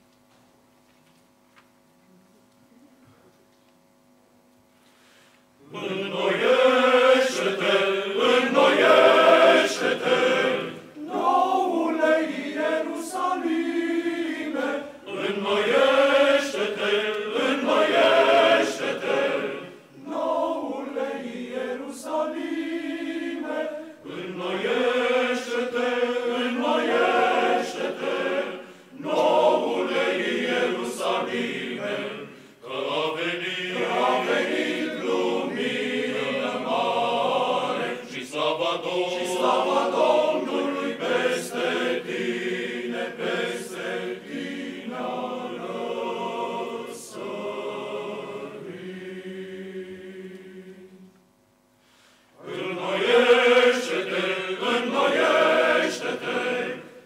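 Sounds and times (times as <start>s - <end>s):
male choir singing a cappella: 5.6s - 51.2s, 52.4s - 57.0s.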